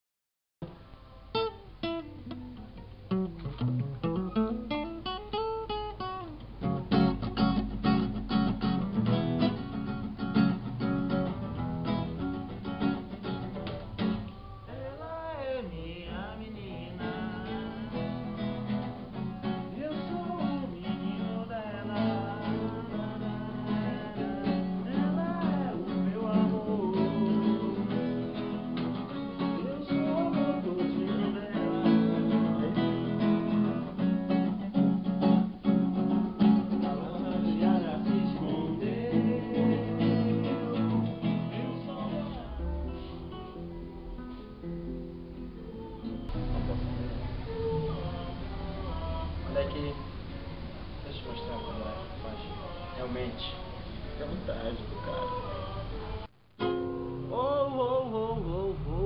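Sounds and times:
acoustic guitar strumming: 0.6 - 59.0
person singing: 13.9 - 44.6, 45.4 - 53.8, 54.6 - 59.0.

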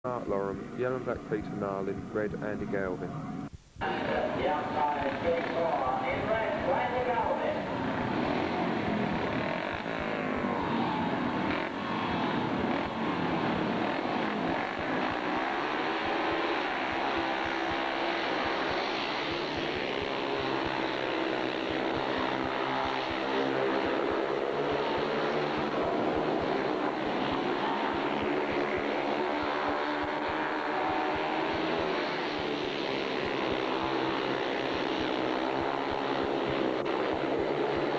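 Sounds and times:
motorcycle engines racing: 0.1 - 37.9.

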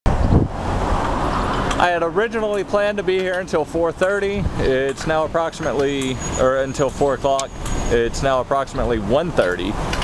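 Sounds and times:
wind rumble on microphone: 0.1 - 1.8, 4.2 - 4.9
passing cars rushing: 0.1 - 10.0
man talking: 1.8 - 9.8.

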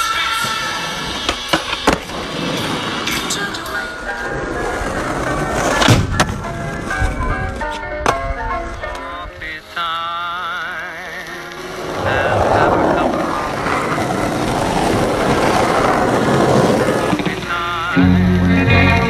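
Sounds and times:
background music: 0.0 - 12.5, 15.8 - 19.0
skateboard wheels rolling on asphalt: 0.0 - 19.0
skateboard clacks: 1.1 - 9.2, 11.4 - 19.0.

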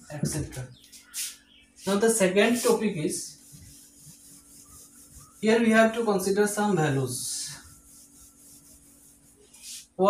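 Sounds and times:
duster rubbing on whiteboard: 1.0 - 6.3, 7.2 - 10.0.

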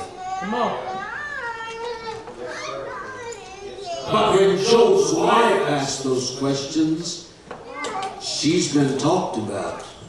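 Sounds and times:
young child talking: 0.0 - 4.5, 7.6 - 8.4
amplified preaching: 4.0 - 7.3.

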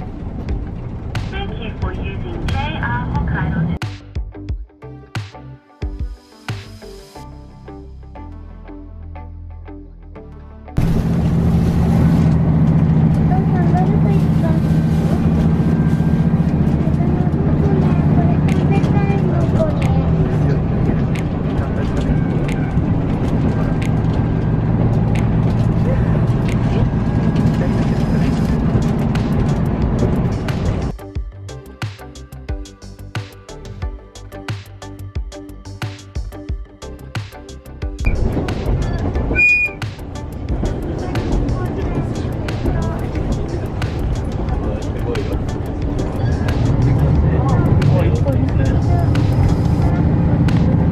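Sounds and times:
railcar engine drone: 0.0 - 3.8, 10.8 - 31.0, 38.0 - 50.9
train rumbling: 0.0 - 3.8, 10.8 - 31.0, 38.0 - 50.9
high whistle tone: 39.3 - 39.8.

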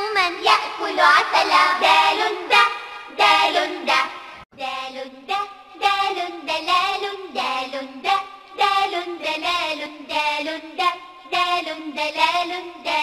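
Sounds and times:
child singing a song: 0.0 - 13.0.

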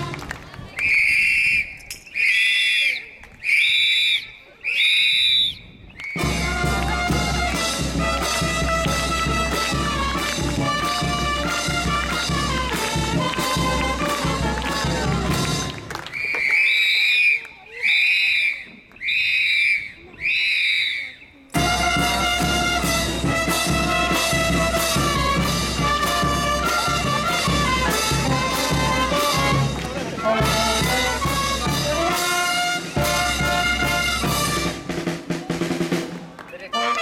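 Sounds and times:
whistle blasts: 0.7 - 6.6, 16.0 - 22.1.

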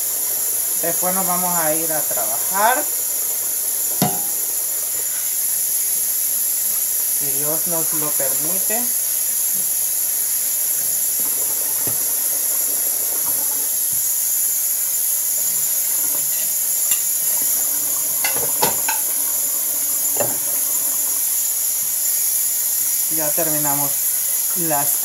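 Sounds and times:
kitchen tap running: 0.0 - 25.0
dishes knocking: 4.0 - 4.5, 18.2 - 19.1, 20.2 - 20.5.

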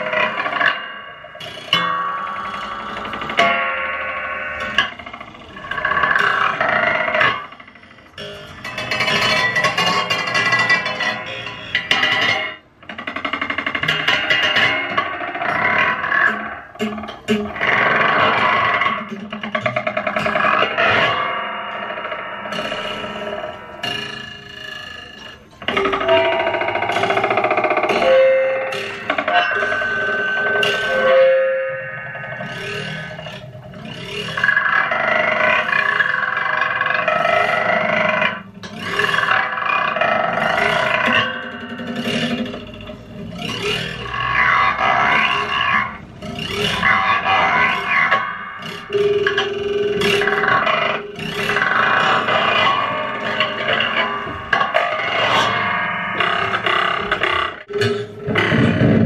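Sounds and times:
objects scraped and struck: 0.0 - 59.0.

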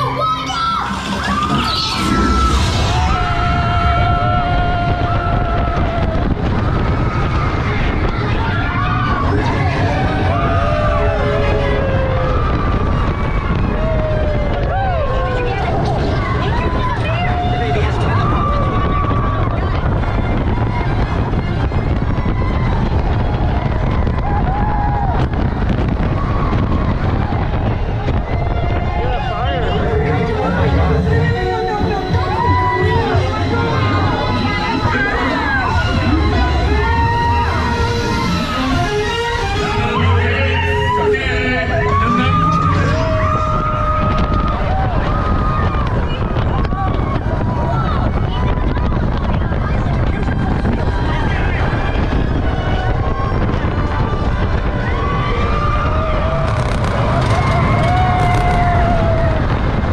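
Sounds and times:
roller coaster train roaring on track: 0.0 - 59.9
wind rushing over microphone: 0.0 - 59.9
riders screaming: 28.3 - 48.1, 50.8 - 59.9.

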